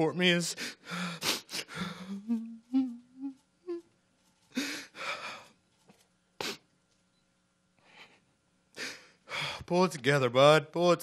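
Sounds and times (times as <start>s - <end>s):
man sobbing: 0.5s - 3.9s, 4.5s - 5.5s
low wavering whimpers: 2.0s - 3.9s.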